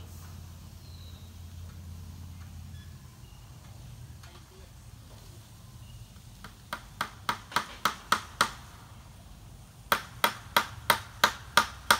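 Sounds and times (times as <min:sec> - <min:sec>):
hammer driving nails into wood: 0:06.4 - 0:08.7, 0:09.9 - 0:11.9.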